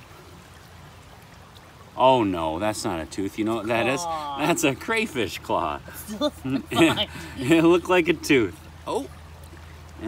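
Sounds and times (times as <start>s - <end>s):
creek water running: 0.0s - 10.0s.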